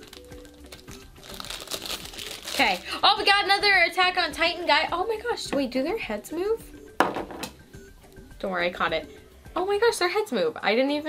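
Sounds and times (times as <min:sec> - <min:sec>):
foil wrapper crinkling: 0:00.0 - 0:03.0.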